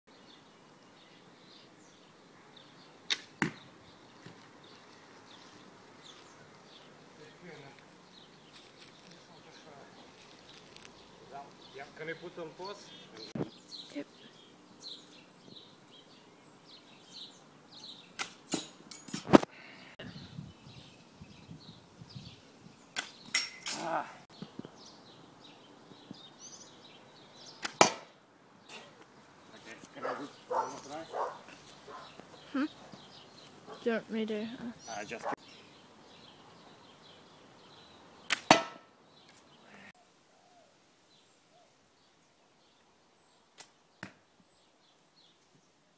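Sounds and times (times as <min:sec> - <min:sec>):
arrow striking target: 0:03.1 - 0:03.6, 0:18.2 - 0:19.5, 0:27.6 - 0:28.1, 0:38.3 - 0:38.9
bowstring release crack: 0:03.1 - 0:03.6, 0:43.6 - 0:44.2.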